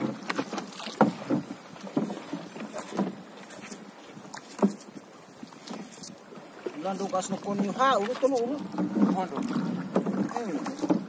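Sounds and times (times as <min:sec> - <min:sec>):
faint water splashing: 0:00.0 - 0:11.0.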